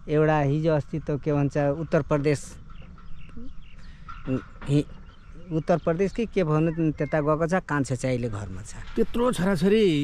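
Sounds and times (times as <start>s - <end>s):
faint outdoor background: 0.0s - 10.0s.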